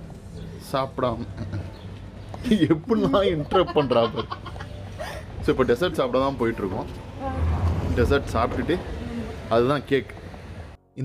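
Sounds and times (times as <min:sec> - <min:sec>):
man laughing heartily: 0:01.1 - 0:05.5
woman laughing: 0:02.4 - 0:05.4.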